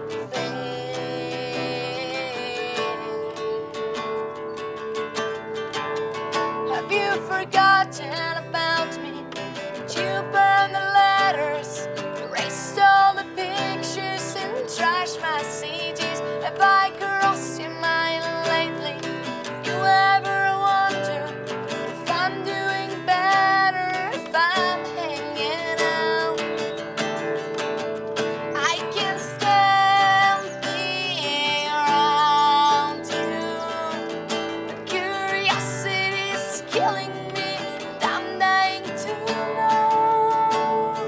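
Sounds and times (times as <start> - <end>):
woman singing: 0.0 - 5.6, 6.3 - 41.0
acoustic guitar strumming: 0.0 - 41.0.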